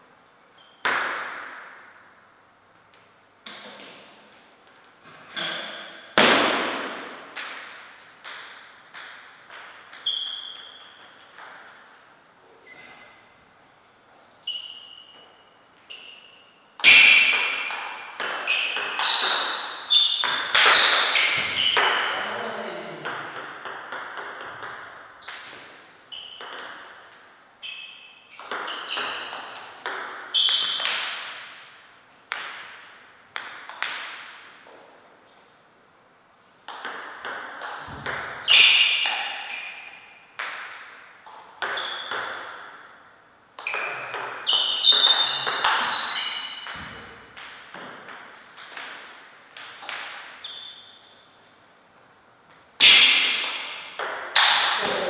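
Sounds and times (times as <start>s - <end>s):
table tennis ball hits: 0.6s - 2.0s, 5.4s - 12.0s, 16.8s - 22.2s, 23.0s - 27.3s, 28.3s - 34.6s, 36.7s - 43.0s, 43.6s - 50.4s, 52.8s - 55.0s.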